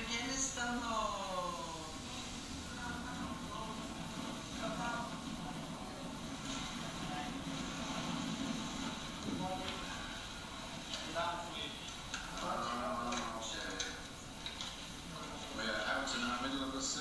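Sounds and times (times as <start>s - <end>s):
faint indistinct voices: 0.0s - 17.0s
steady low rumble: 0.5s - 10.8s.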